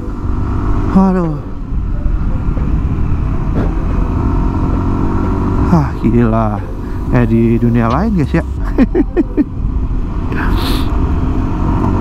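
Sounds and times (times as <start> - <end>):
scooter engine cruising: 0.0 - 12.0.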